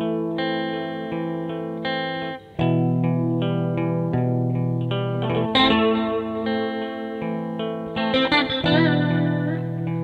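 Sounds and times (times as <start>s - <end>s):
guitar chords ringing: 0.0s - 10.0s.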